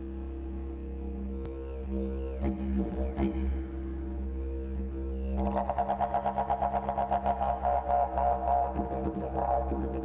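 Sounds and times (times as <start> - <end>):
didgeridoo drone: 0.0 - 10.0.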